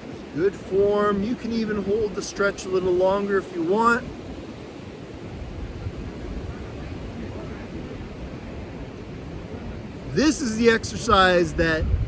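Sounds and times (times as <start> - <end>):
ocean surf: 0.0 - 12.0
wind: 0.0 - 12.0
wind rumble on microphone: 0.0 - 12.0.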